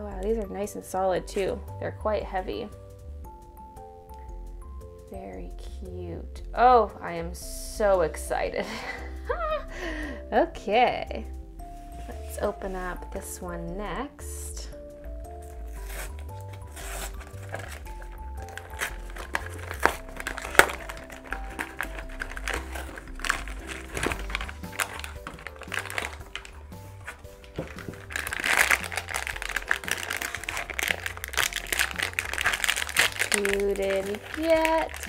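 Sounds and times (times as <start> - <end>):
light background music: 0.0 - 35.0
foil bag crinkling and tearing: 15.4 - 35.0
cardboard box being opened: 15.5 - 35.0.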